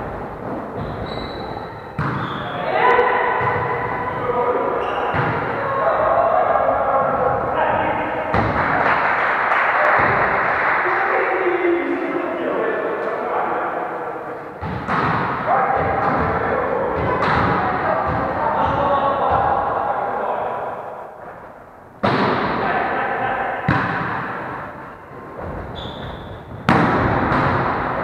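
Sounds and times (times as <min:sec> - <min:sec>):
volleyball hits echoing in gym: 0:00.0 - 0:10.6, 0:14.6 - 0:19.8, 0:20.6 - 0:28.0.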